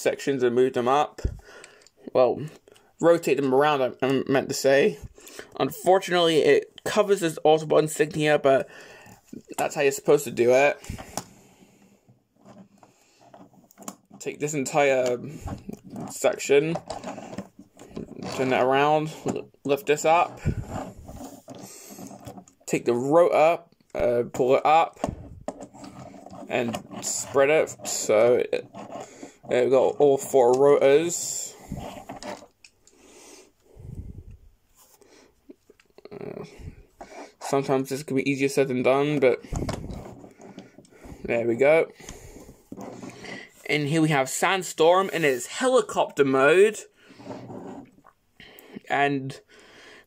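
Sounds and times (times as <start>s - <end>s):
breathing: 1.2s - 2.0s, 5.0s - 5.6s, 8.7s - 9.3s, 10.8s - 12.2s, 12.8s - 13.5s, 20.4s - 22.2s, 29.0s - 29.5s, 32.8s - 35.4s, 36.4s - 37.4s, 39.4s - 41.3s, 42.0s - 43.6s, 46.9s - 47.5s, 48.4s - 50.0s
plastic rubbing and tapping: 8.0s - 11.4s, 12.1s - 22.7s, 24.2s - 33.0s, 39.0s - 43.6s.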